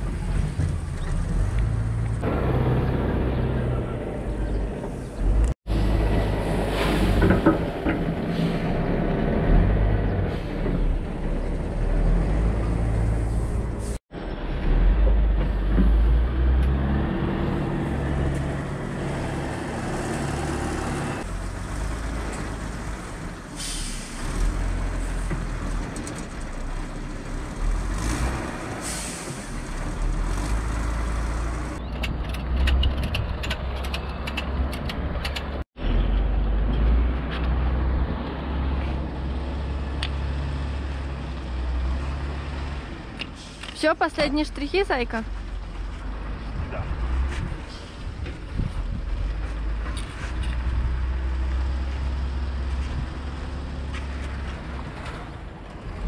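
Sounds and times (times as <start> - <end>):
tractor engine revving: 0.0 - 23.3.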